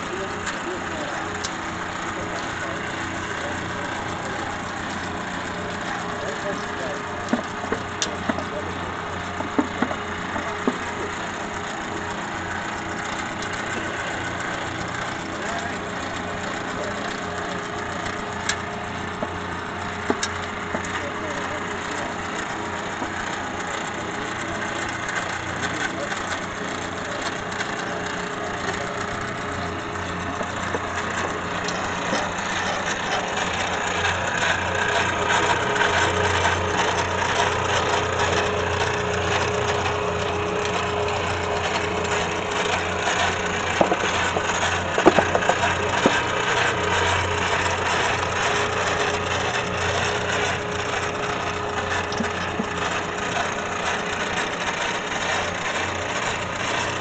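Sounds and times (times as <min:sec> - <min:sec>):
pipe threading machine running: 0:00.0 - 0:57.0.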